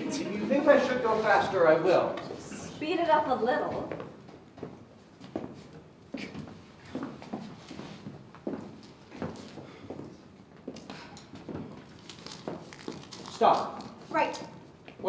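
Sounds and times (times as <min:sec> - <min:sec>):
footsteps on stage floor: 0:03.6 - 0:13.0.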